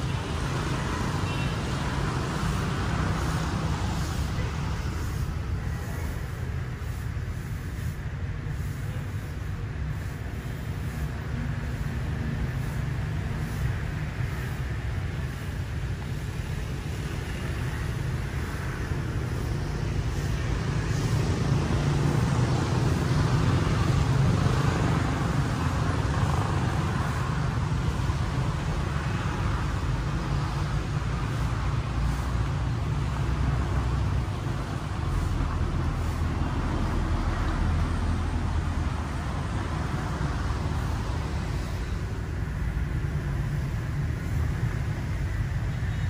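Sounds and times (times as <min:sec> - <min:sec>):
city traffic rumble: 0:00.0 - 0:46.0.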